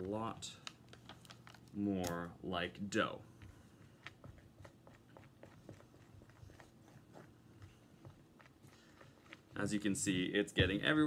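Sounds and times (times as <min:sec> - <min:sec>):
stir stick squelching thick dough: 0:00.0 - 0:11.0.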